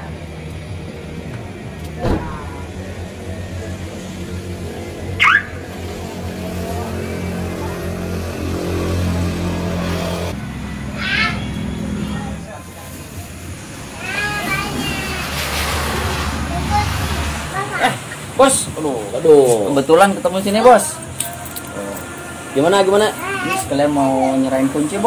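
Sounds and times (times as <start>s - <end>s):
car alarm chirp: 5.2s - 5.6s.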